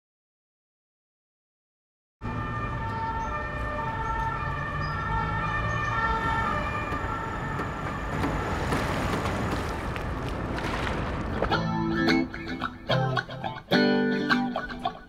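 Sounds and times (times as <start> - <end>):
distant emergency siren: 2.2 - 10.3
city traffic rumble: 2.2 - 15.0.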